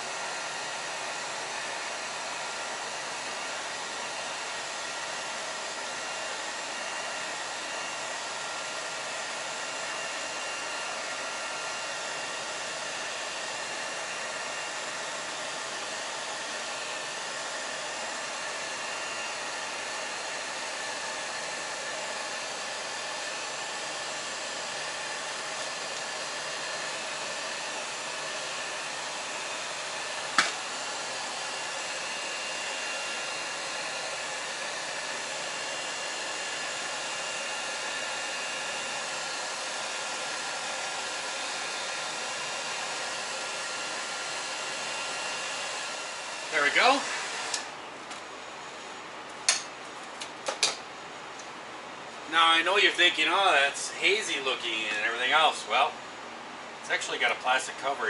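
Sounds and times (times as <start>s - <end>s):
heat gun fan whining: 0.0s - 58.0s.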